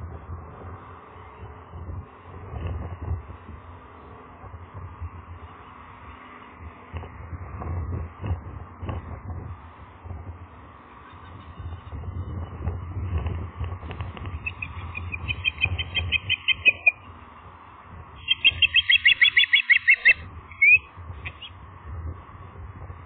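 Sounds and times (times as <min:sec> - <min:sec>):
low steady rumble: 0:00.0 - 0:23.0
ospreys chirping: 0:14.2 - 0:17.1, 0:18.2 - 0:21.6.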